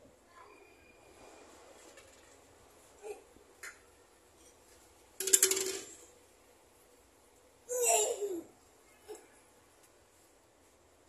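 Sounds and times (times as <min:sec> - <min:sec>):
plastic bottle clattering on tiles: 0:05.2 - 0:06.0.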